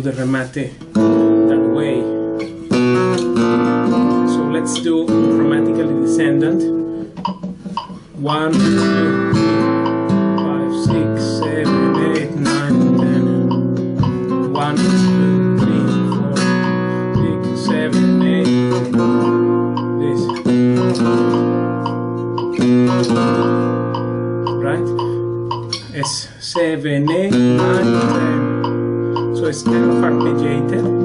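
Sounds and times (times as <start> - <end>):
flamenco guitar fast strums: 0.8 - 31.0.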